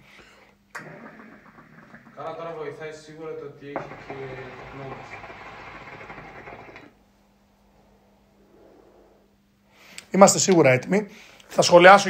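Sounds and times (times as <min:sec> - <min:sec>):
faint breath: 0:00.0 - 0:00.6, 0:07.8 - 0:10.1, 0:11.1 - 0:11.5
hookah water bubbling: 0:00.8 - 0:03.0, 0:03.8 - 0:07.0.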